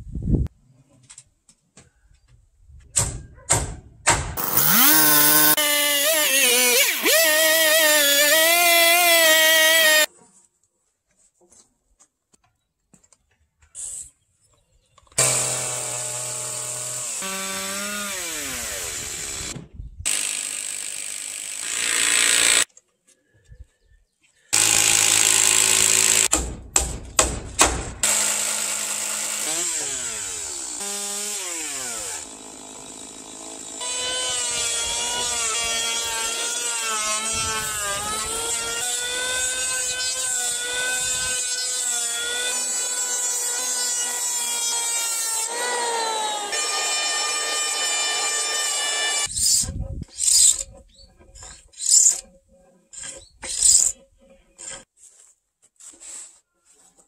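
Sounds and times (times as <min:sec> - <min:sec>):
motor running under load: 0:04.4 - 0:05.6
motor winding down whine: 0:04.4 - 0:05.6
power tools cutting timber: 0:04.4 - 0:10.1, 0:15.2 - 0:22.7, 0:24.6 - 0:26.5, 0:28.0 - 0:49.6.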